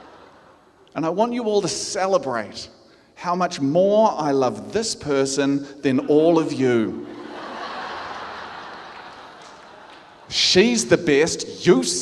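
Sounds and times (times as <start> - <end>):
audience laughing: 7.0 - 10.3.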